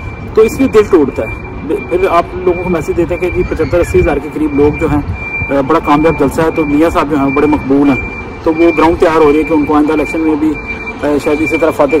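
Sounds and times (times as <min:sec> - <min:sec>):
faint high-pitched beeps: 0:00.0 - 0:12.0
man talking: 0:00.3 - 0:12.0.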